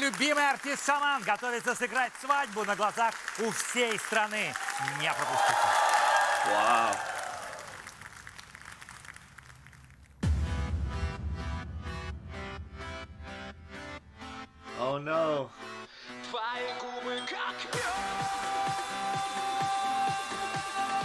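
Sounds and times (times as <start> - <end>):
man speaking: 0.0 - 5.4
studio audience applauding: 0.0 - 10.2
music: 10.2 - 21.0.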